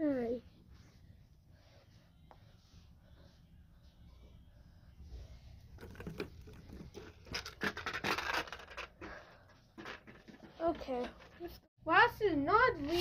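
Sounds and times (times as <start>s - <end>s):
plastic toys being handled: 5.6s - 11.7s.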